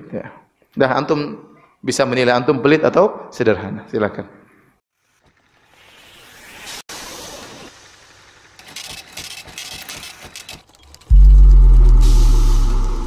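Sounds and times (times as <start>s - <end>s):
deep bass boom: 11.1s - 13.0s.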